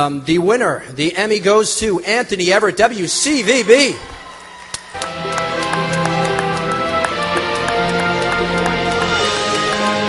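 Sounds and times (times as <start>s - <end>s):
theme music with steady beat: 4.8s - 10.0s.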